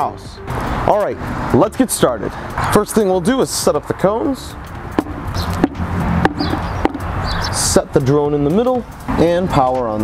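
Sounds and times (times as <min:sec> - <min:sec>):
footsteps: 0:04.6 - 0:07.2
plastic cones tapping on concrete: 0:04.8 - 0:07.2.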